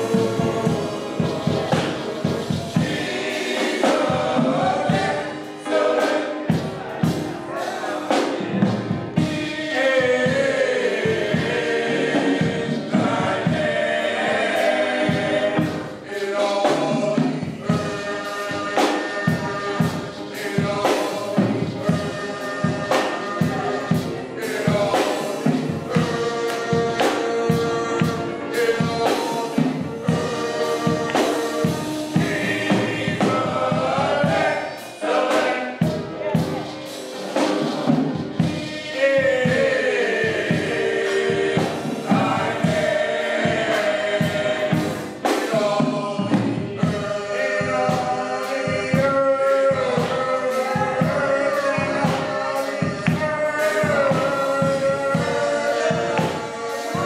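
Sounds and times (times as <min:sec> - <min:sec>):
male vocal group singing in harmony: 0:00.0 - 0:57.0.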